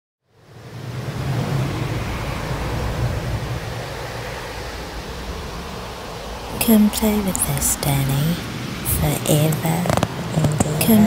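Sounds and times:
rushing wind: 0.3 - 11.0.

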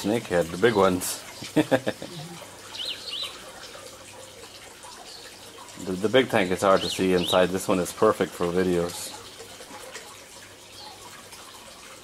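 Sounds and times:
water running into fish tank: 0.0 - 12.0.

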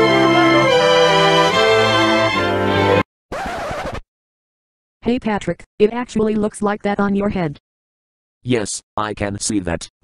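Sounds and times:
music: 0.0 - 3.0.

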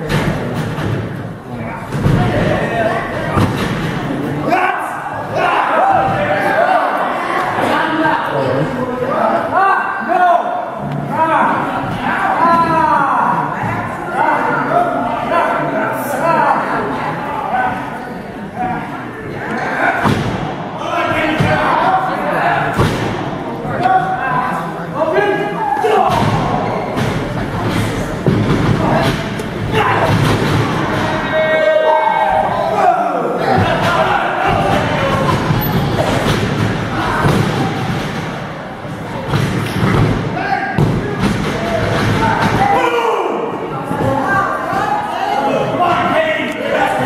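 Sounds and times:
crowd shouting: 4.4 - 8.0, 28.9 - 38.8, 40.4 - 47.0.

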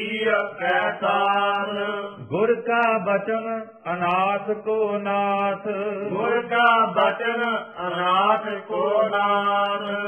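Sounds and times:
man chanting: 1.2 - 10.0.

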